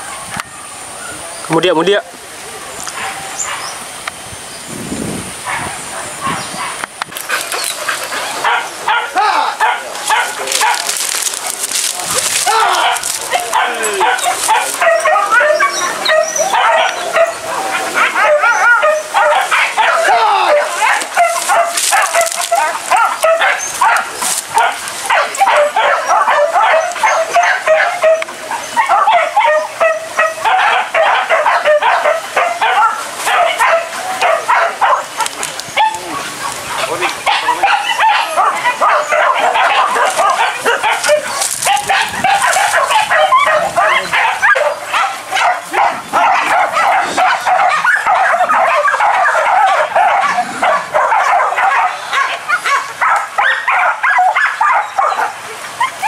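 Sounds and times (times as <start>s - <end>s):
dogs yelping and barking: 2.9s - 3.8s, 5.4s - 56.0s.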